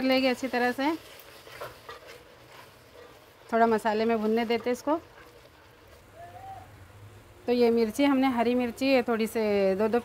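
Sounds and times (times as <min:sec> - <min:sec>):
spatula stirring and scraping pot: 0:00.0 - 0:06.1.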